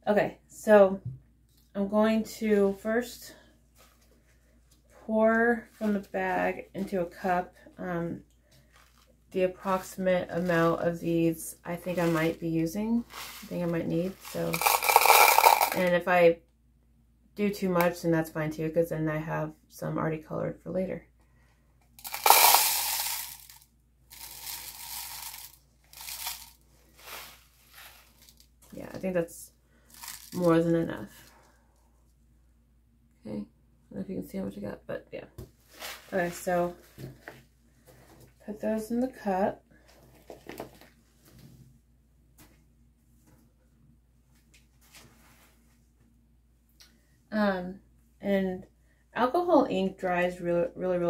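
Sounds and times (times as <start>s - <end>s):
low steady hum: 0.0s - 51.0s
crushed glass pouring into cup: 14.6s - 15.8s, 22.0s - 23.6s, 24.2s - 27.9s.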